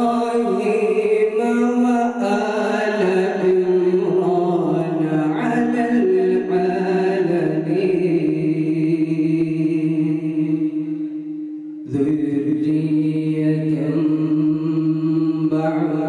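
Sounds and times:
man reciting melodically: 0.0s - 10.9s, 11.8s - 16.0s.

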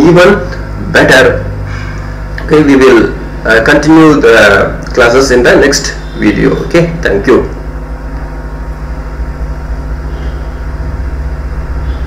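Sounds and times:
low fluttering hum: 0.0s - 3.7s, 7.6s - 12.0s.

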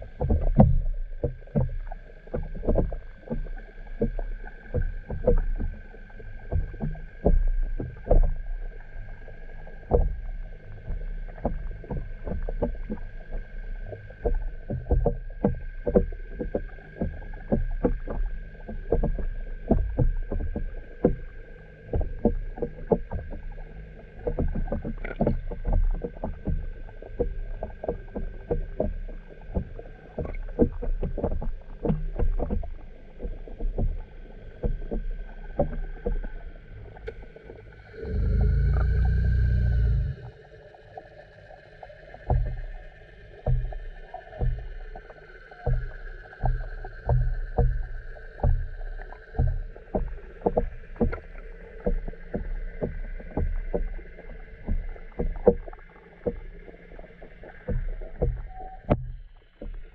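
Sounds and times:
steady high hum: 36.5s - 40.6s
loud low rumble: 37.8s - 40.4s
soft knocks and clicks: 57.6s - 59.8s.

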